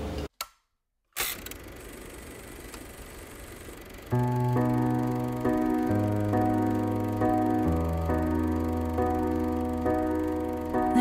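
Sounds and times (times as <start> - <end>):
soft background music chords: 4.2 - 11.0.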